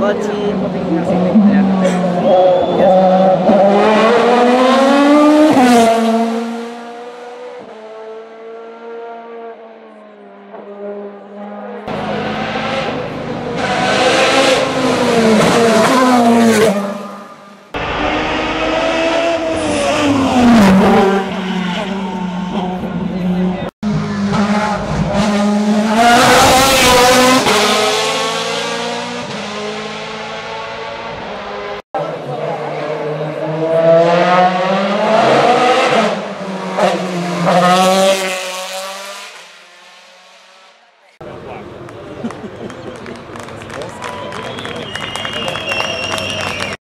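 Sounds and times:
race car engines at full throttle: 0.0s - 46.8s.

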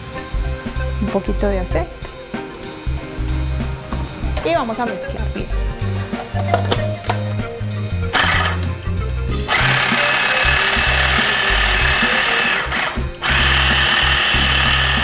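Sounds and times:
electric food chopper running: 8.0s - 15.0s.

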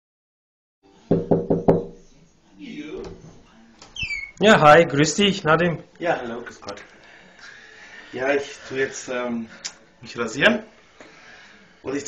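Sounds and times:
knocks on wooden door: 1.1s - 2.0s.

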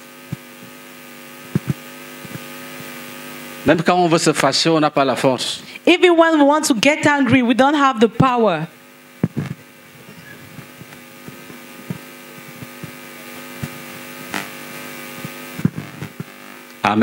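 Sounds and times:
steady hum with overtones: 0.0s - 17.0s.

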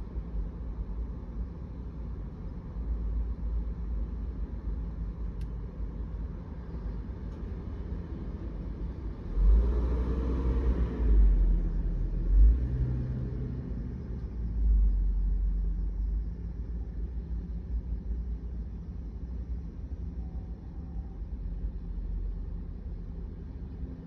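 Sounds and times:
low vehicle rumble: 0.0s - 24.0s.

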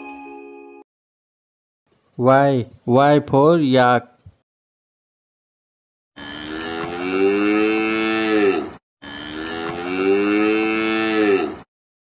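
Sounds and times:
cow mooing: 6.2s - 11.7s.

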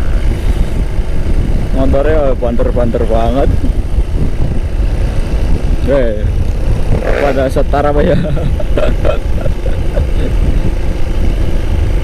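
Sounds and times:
motorcycle engine: 0.0s - 12.0s
road noise: 0.0s - 12.0s
wind buffeting microphone: 0.0s - 12.0s.

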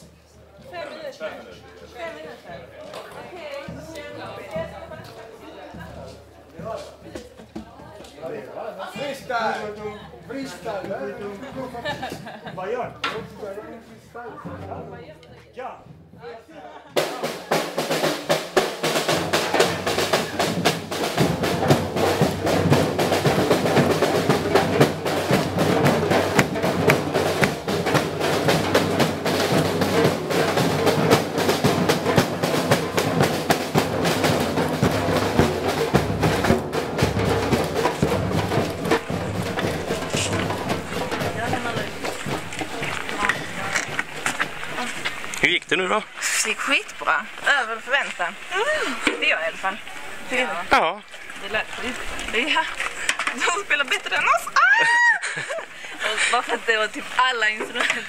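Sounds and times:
samba drumming: 2.0s - 8.0s, 15.8s - 58.0s.

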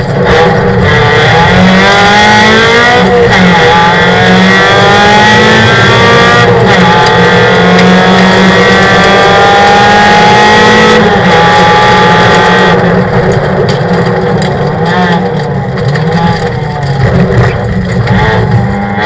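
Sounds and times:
race car engine accelerating: 0.0s - 19.0s.

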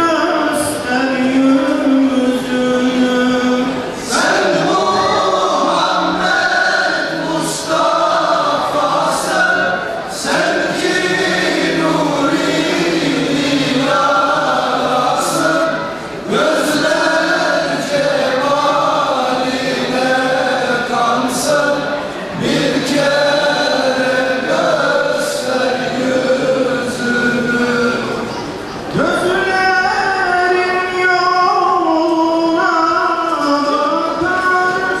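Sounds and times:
men's choir singing a hymn: 0.0s - 35.0s.

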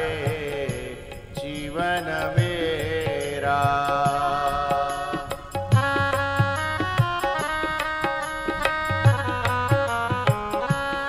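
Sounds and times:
drum beats: 0.0s - 11.0s
person singing devotional song: 0.0s - 11.0s
melodic accompaniment: 5.7s - 11.0s.

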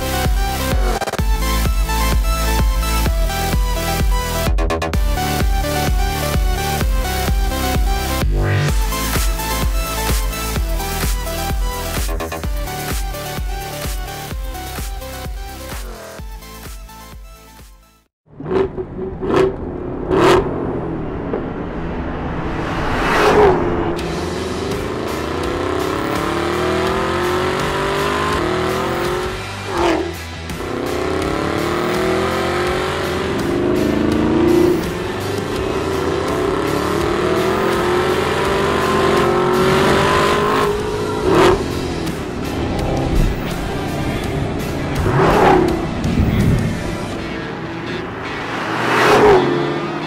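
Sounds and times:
car engine accelerating: 0.0s - 16.4s, 18.2s - 50.0s
background music: 0.0s - 18.1s, 23.5s - 50.0s.

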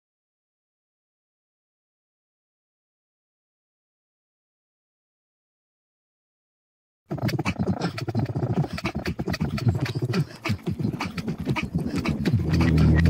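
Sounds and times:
gruff animal-like vocal sample: 7.1s - 13.0s
rapid clicks: 7.1s - 13.0s.

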